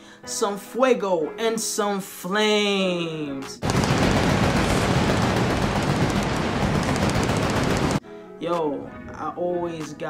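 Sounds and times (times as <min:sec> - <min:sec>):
pyrotechnics crackling and banging: 0:03.6 - 0:08.0.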